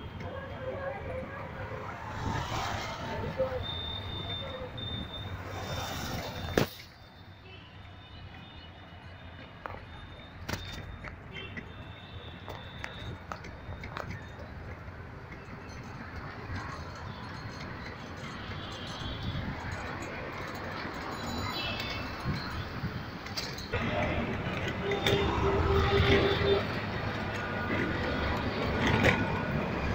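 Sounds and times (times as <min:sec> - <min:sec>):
slow road traffic: 0:00.0 - 0:29.9.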